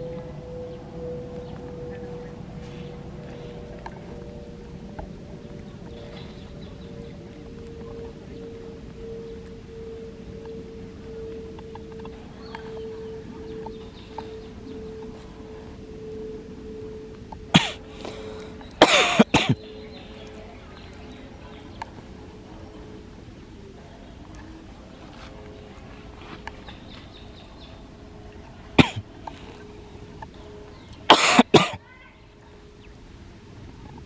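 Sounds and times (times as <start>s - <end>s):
monkeys harsh cough-like calls: 17.5s - 17.9s, 18.8s - 19.7s, 28.8s - 29.1s, 31.1s - 31.9s.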